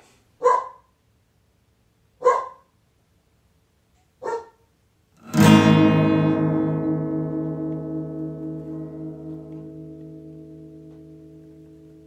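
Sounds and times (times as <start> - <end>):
dog barking: 0.4 - 0.9, 2.2 - 2.7, 4.2 - 4.7.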